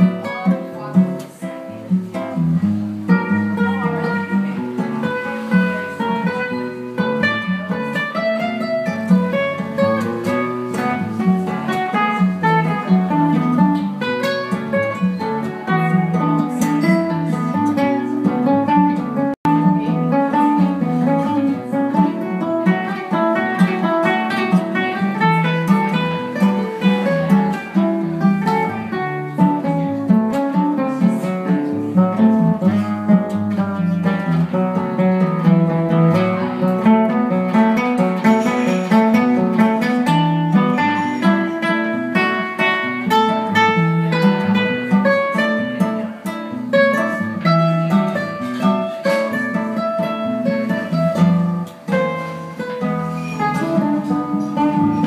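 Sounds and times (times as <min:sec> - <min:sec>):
classical guitars playing: 0:00.0 - 0:55.0.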